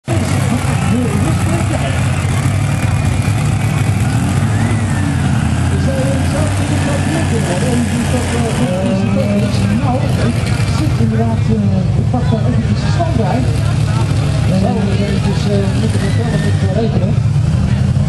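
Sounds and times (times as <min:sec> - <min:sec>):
tractor diesel engine running: 0:00.0 - 0:18.0
public address voice: 0:05.7 - 0:17.2.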